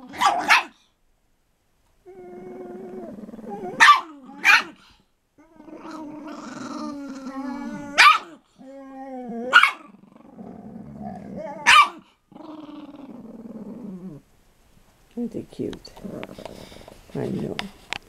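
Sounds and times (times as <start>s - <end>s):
dog barking sharply: 0.1s - 0.8s, 3.8s - 4.8s, 8.0s - 8.4s, 9.5s - 9.9s, 11.6s - 12.0s
dogs growling: 2.1s - 14.3s, 15.9s - 17.0s.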